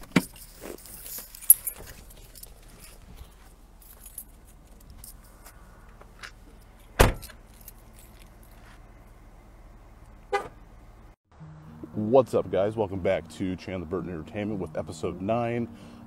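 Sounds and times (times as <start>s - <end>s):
car door shutting: 7.0s - 7.4s.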